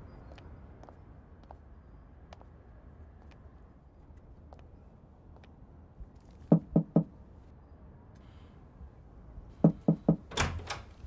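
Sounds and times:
knuckles rapping on metal door: 0:06.5 - 0:07.1, 0:09.6 - 0:10.8.

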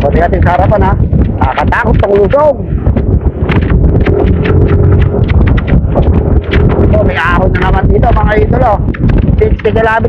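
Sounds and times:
wind buffeting microphone: 0:00.0 - 0:10.0
motorcycle running: 0:02.9 - 0:09.8
rapid uneven clatter: 0:03.4 - 0:10.0.

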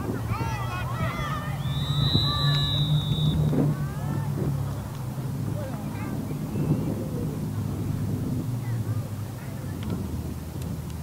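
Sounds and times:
distant shouts: 0:00.0 - 0:09.6
low wind rumble on microphone: 0:00.0 - 0:11.0
referee's whistle blast: 0:01.6 - 0:03.5.

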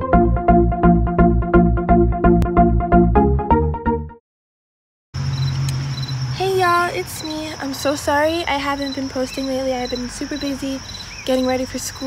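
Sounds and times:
crickets chirping: 0:05.2 - 0:12.0
woman's voice: 0:06.4 - 0:12.0.

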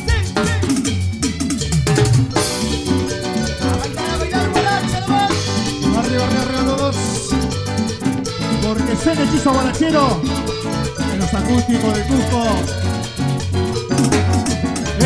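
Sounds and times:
latin dance band playing: 0:00.0 - 0:15.0.

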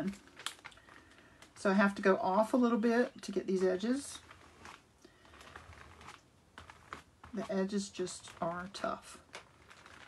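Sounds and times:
spreader scraping gel on paper: 0:03.5 - 0:10.0.

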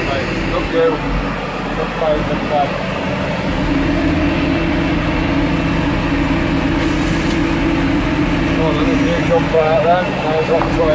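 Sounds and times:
tractor engine running: 0:00.0 - 0:10.9.

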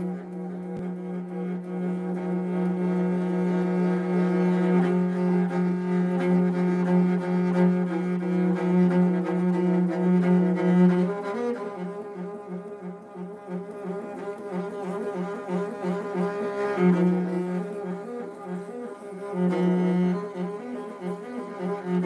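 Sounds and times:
bowed fiddle pulsing low note: 0:00.0 - 0:22.0.

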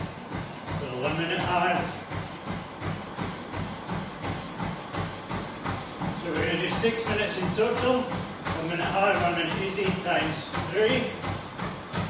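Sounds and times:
footfalls on treadmill belt: 0:00.0 - 0:12.0
treadmill running hum: 0:00.0 - 0:12.0.

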